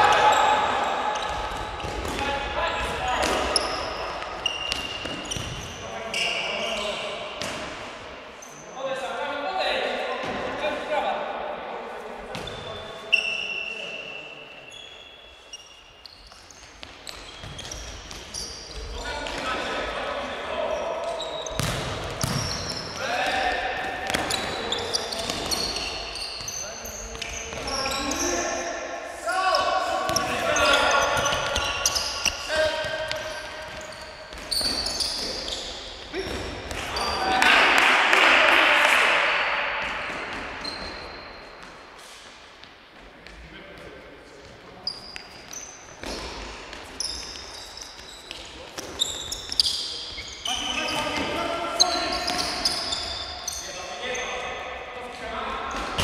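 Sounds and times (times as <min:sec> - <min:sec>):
ball kicked and bouncing: 0:21.6 - 0:22.5.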